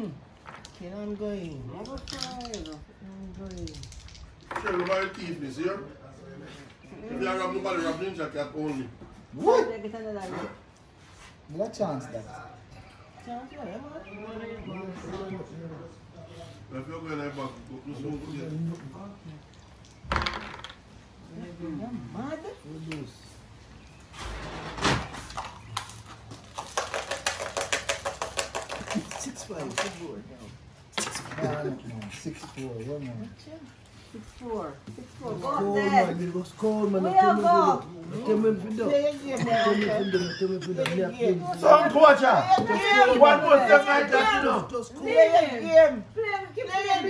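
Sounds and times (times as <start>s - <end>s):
dice rattling in hands: 1.8s - 5.0s, 20.1s - 20.8s, 26.6s - 29.9s.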